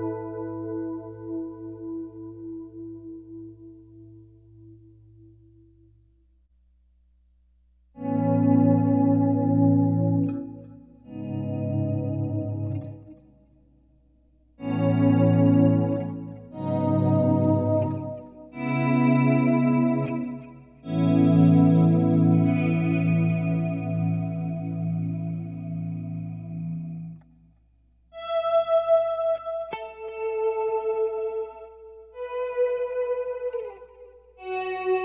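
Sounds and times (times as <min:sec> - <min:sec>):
clean electric guitar chords: 0:00.0 - 0:06.0, 0:08.0 - 0:13.7, 0:14.5 - 0:27.3, 0:28.1 - 0:35.0.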